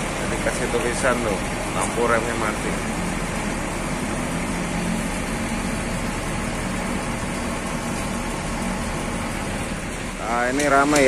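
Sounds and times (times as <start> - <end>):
diesel engines idling: 0.0 - 11.0.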